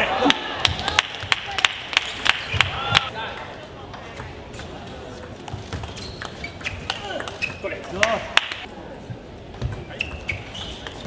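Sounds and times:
shoes squeaking on floor: 0:05.7 - 0:08.0, 0:09.6 - 0:11.0.

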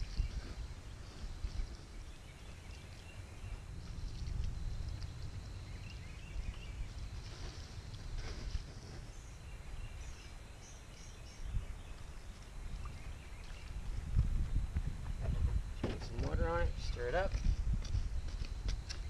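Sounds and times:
birds chirping: 0:00.0 - 0:17.5
steady low rumble: 0:00.0 - 0:19.0.

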